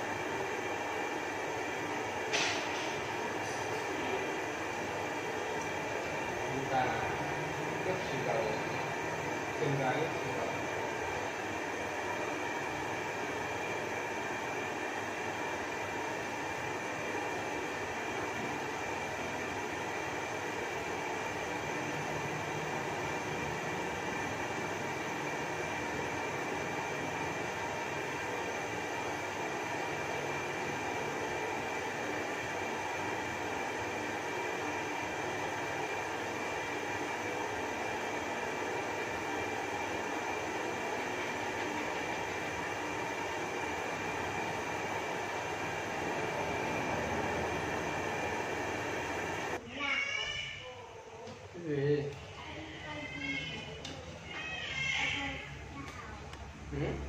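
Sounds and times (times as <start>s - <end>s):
gas burner rushing: 0.0s - 49.6s.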